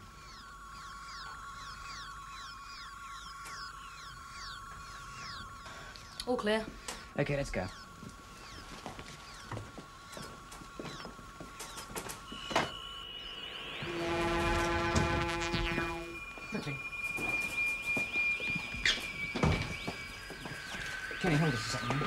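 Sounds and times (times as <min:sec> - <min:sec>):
gliding electronic bleeps: 0:00.0 - 0:22.0
synthesized held tones: 0:00.0 - 0:22.0.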